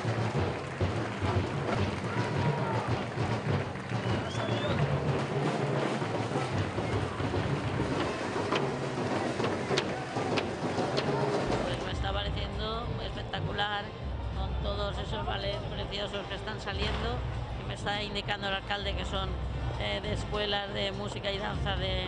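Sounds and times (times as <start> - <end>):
crowd noise: 0.0 - 22.0.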